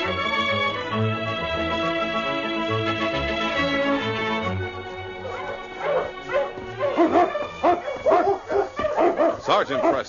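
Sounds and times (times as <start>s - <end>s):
orchestral string music: 0.0s - 8.6s
sled dogs barking: 5.0s - 10.0s.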